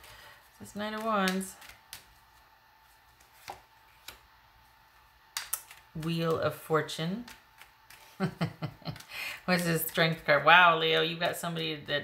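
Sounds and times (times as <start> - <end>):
cards clicking: 0.9 - 2.2, 5.3 - 6.1, 7.2 - 8.2
card snaps and taps: 5.3 - 5.9.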